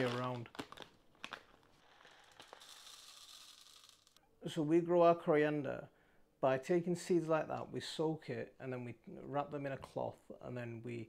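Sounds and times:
plastic bag clicks: 0:00.0 - 0:01.6
seeds streaming into bowl: 0:02.0 - 0:04.2.

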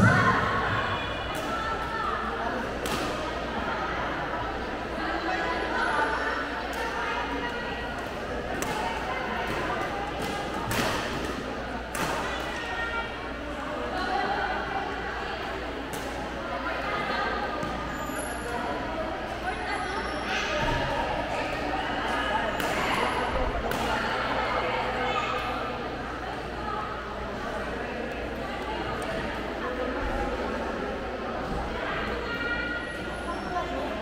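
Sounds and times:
background chatter: 0:00.0 - 0:34.0.

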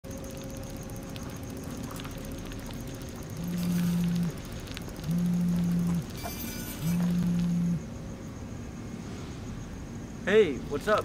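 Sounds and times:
smartphone vibrating: 0:03.4 - 0:04.4, 0:05.0 - 0:07.8.

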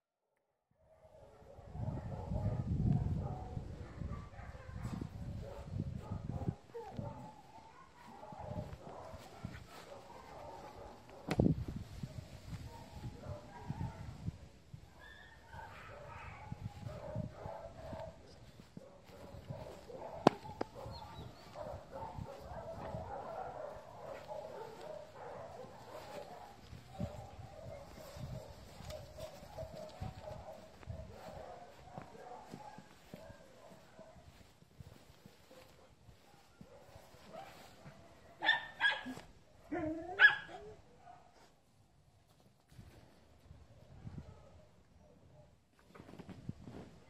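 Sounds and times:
dog barking: 0:00.9 - 0:11.4, 0:12.1 - 0:14.2, 0:14.9 - 0:41.5, 0:44.2 - 0:45.6.

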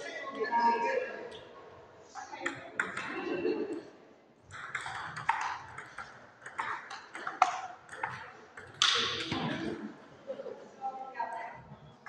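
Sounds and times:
table tennis ball clicks: 0:04.5 - 0:09.6.

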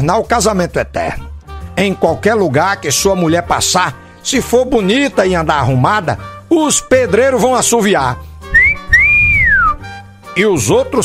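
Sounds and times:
background music: 0:00.0 - 0:11.0
wolf whistle: 0:08.5 - 0:10.0.

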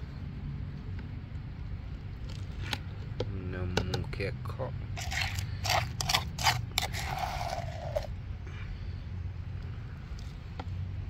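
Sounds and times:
plastic spoon scraping stone mortar: 0:05.0 - 0:08.1.

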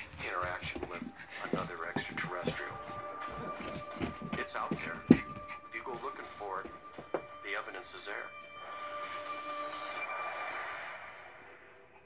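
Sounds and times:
held music tones: 0:00.0 - 0:10.1.

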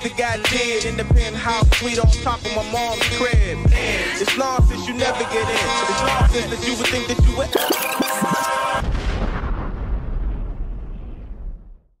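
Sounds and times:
hip-hop music: 0:00.0 - 0:08.8
deep boom rumble: 0:08.8 - 0:11.9.

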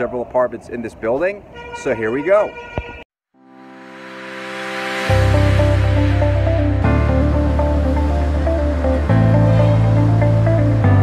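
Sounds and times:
repeating melody of short notes: 0:03.5 - 0:11.0
sustained bass notes: 0:03.5 - 0:11.0.

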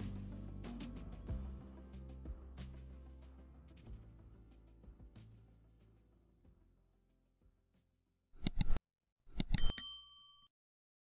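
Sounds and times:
quick mouse clicks: 0:08.4 - 0:09.7
notification bell ding: 0:09.4 - 0:10.5.

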